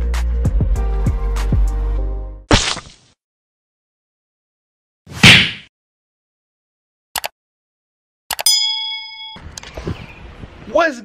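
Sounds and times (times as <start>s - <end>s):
bright bell-like ding: 8.4s - 9.4s.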